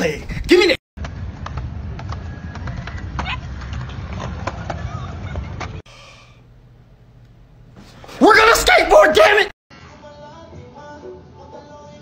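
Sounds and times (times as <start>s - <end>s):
skateboard wheels rolling: 1.0s - 5.8s.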